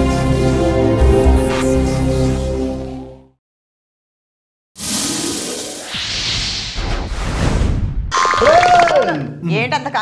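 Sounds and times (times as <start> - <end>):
comic pitched effect: 4.8 - 9.0.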